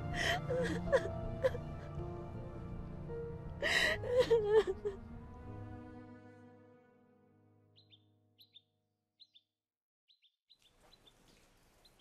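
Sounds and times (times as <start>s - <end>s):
woman sobbing and whimpering: 0.0s - 2.0s, 3.6s - 5.1s
background music: 0.0s - 8.6s.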